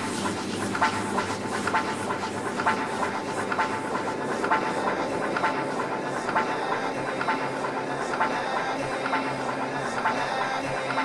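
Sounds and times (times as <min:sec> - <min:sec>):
hissing noise texture: 0:00.0 - 0:11.0.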